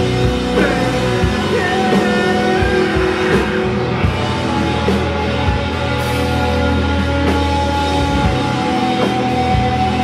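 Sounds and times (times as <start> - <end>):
drums: 0.0 - 10.0
electric guitars: 0.0 - 10.0.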